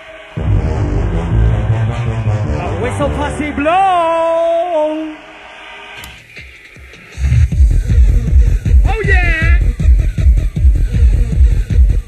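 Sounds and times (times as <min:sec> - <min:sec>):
hardcore techno music: 0:00.0 - 0:12.0
heavy fast kick drum: 0:07.2 - 0:12.0.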